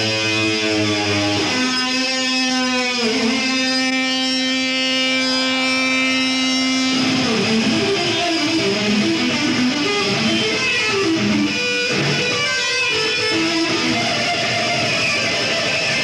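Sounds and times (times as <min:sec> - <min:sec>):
electric guitar notes: 0:00.0 - 0:16.0.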